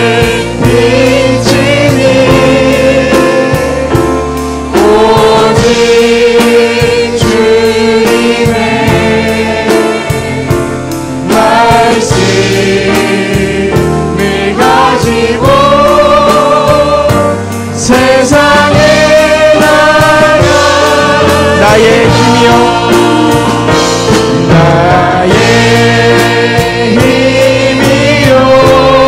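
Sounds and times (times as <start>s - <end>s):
band playing steady beat: 0.0s - 29.0s
man singing into microphone: 17.8s - 23.2s.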